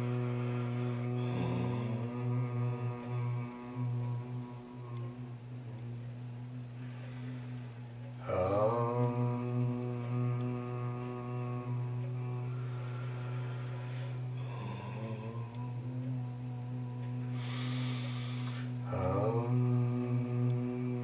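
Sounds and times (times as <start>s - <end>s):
voices chanting a low drone: 0.0s - 21.0s.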